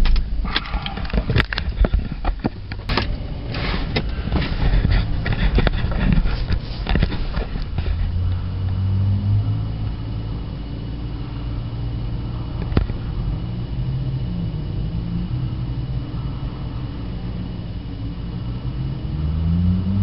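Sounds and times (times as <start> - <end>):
car engine humming: 0.0 - 20.0.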